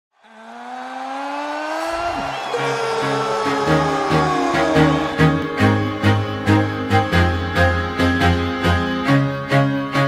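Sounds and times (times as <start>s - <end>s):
sustained tone rising in pitch: 0.2s - 7.4s.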